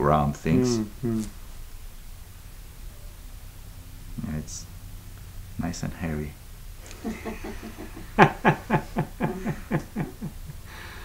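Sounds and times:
man laughing: 0.6s - 1.2s, 6.9s - 10.8s.

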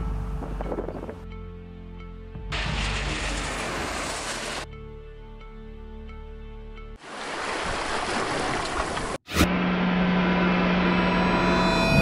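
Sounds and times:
low held drone: 9.4s - 12.0s.

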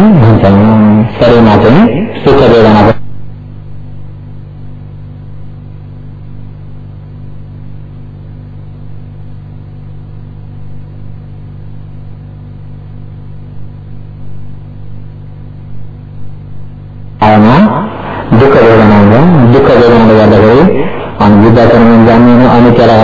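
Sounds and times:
low hum: 0.0s - 23.0s.

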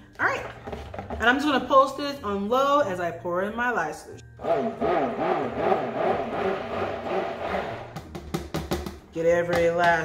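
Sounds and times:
stick blender running: 4.4s - 8.0s.

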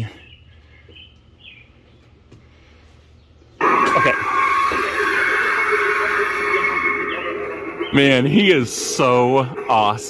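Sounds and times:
animatronic sound effect through speaker: 3.6s - 10.0s.

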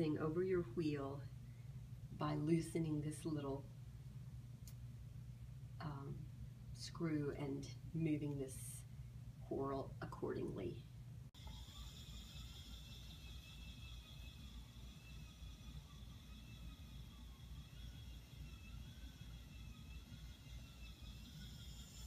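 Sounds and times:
soft rising and falling whine: 0.0s - 22.0s
spinning wheel whirring: 11.4s - 22.0s.

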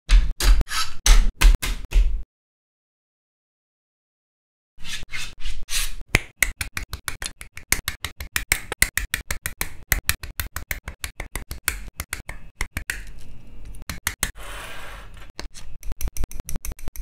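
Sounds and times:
short scrape: 4.8s - 6.0s, 14.4s - 15.3s.

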